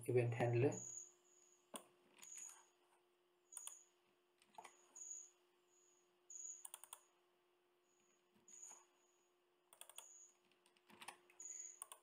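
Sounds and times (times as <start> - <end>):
faint steady hum: 0.0 - 12.0
computer keyboard typing: 3.5 - 4.9, 6.4 - 7.1, 9.7 - 12.0.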